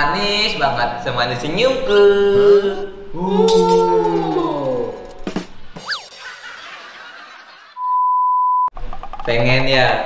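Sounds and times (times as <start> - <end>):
steady beep tone: 7.8 - 8.7.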